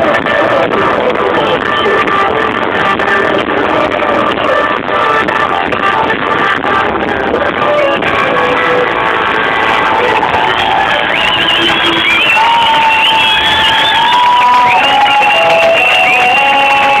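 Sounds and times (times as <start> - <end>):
crowd cheering and applauding: 0.0 - 17.0.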